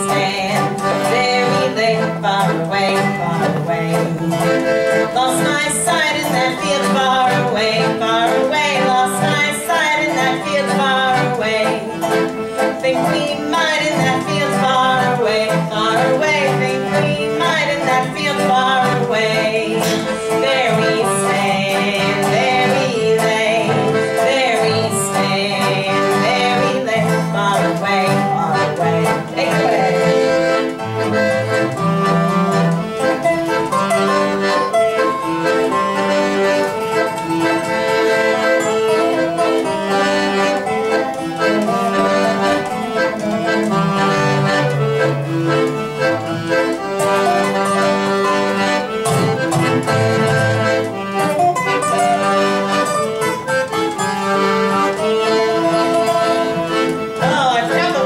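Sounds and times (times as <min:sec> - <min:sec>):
accordion: 0:00.0 - 0:58.0
guitar: 0:00.0 - 0:58.0.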